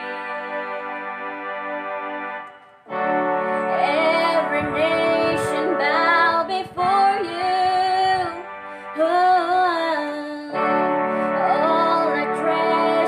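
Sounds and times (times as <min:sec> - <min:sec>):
electronic keyboard chords: 0:00.0 - 0:13.0
women singing worship song: 0:03.7 - 0:07.4, 0:11.3 - 0:13.0.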